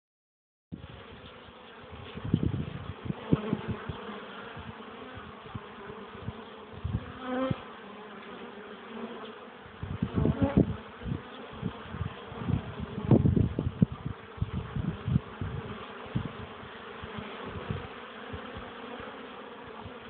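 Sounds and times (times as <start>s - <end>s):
bee buzzing close by: 0.8s - 20.0s
honeybees buzzing: 0.8s - 20.0s.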